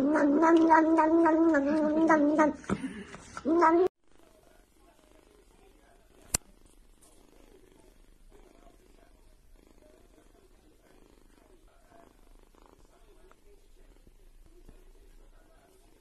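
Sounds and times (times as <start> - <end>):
kitten purring: 3.5 - 16.0.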